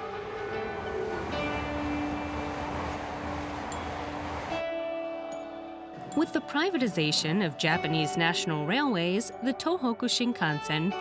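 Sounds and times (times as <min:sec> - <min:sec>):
train rushing on viaduct: 0:00.0 - 0:08.3
background music held notes: 0:00.0 - 0:11.0.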